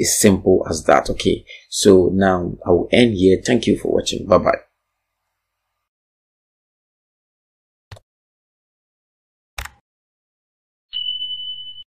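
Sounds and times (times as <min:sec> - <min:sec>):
high electronic ding: 0:10.9 - 0:11.9.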